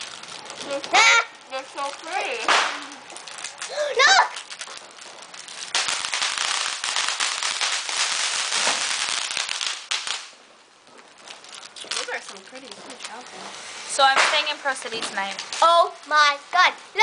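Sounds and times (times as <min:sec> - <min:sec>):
plastic wrapper crinkling: 0:00.0 - 0:16.1.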